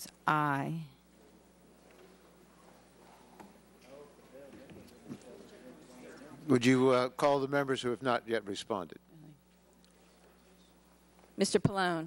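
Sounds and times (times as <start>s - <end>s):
faint murmur of voices: 2.5s - 6.5s.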